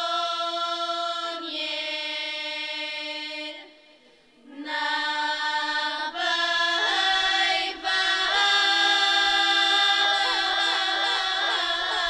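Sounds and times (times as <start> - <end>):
girls' choir singing folk song: 0.0 - 12.0.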